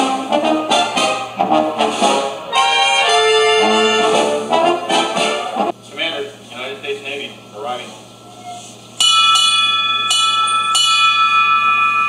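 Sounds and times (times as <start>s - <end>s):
ship's bell ringing: 9.0s - 12.0s.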